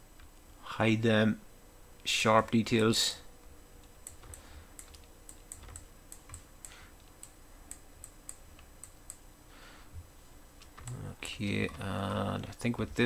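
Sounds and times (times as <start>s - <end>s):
mouse and keyboard clicking: 4.0s - 9.2s, 10.6s - 11.0s.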